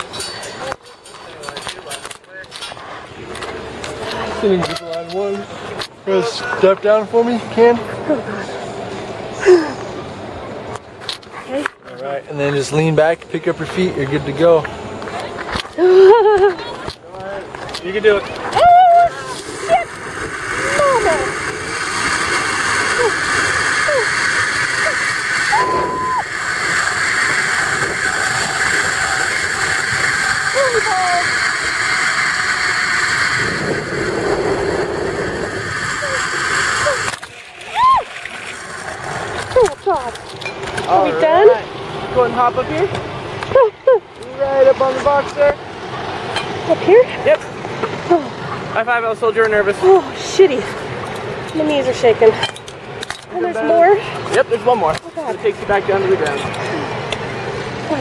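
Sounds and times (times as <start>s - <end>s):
zip-line pulleys whirring: 15.1s - 41.8s
person exclaiming: 18.6s - 19.8s, 25.5s - 26.2s, 37.7s - 38.1s.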